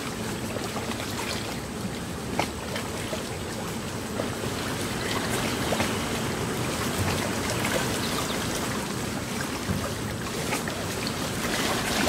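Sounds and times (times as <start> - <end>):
water splashing against rocks: 0.0 - 12.0.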